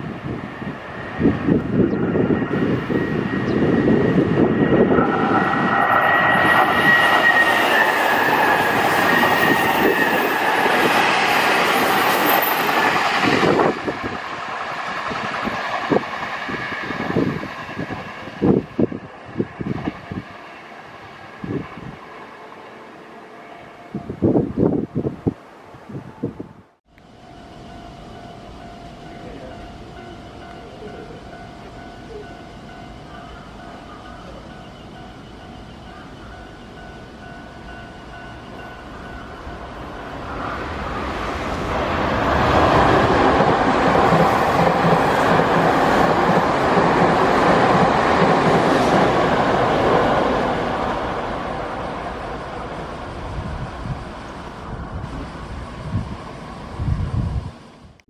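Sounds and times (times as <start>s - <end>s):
train passing close by: 0.0s - 58.0s
wheels clacking over rail joints: 40.6s - 51.7s.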